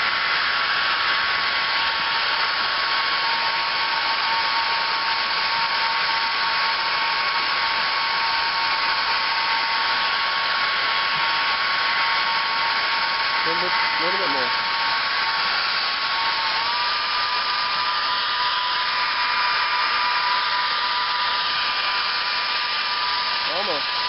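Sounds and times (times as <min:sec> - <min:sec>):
hair dryers blowing and whining: 0:00.0 - 0:24.0.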